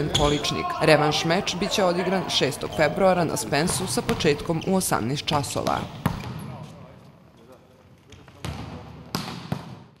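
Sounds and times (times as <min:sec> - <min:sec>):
volleyball smacks with hall echo: 0:05.3 - 0:06.6, 0:08.2 - 0:10.0.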